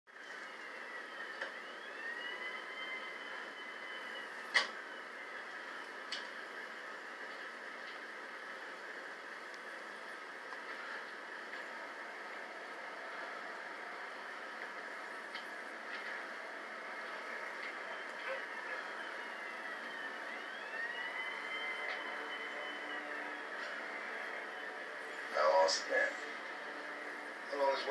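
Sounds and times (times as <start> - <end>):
distant siren wailing: 0.1 - 27.9.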